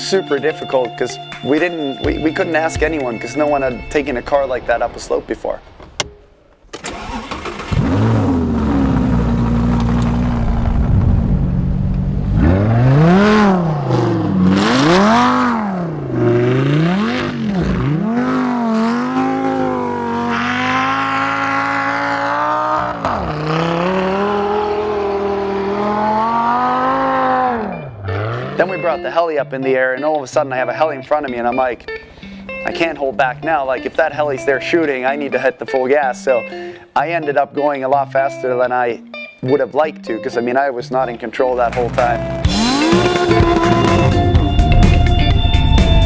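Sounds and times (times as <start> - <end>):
car engine starting and revving: 5.6 - 29.0, 41.5 - 46.0.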